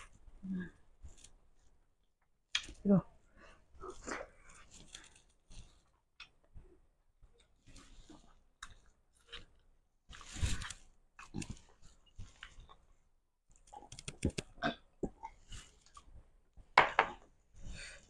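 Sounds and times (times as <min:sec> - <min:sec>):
person chewing food: 0:07.3 - 0:12.9, 0:13.5 - 0:16.1.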